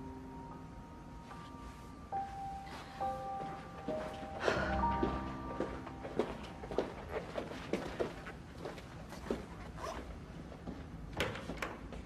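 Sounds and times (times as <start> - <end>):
soft footsteps: 1.2 - 12.0.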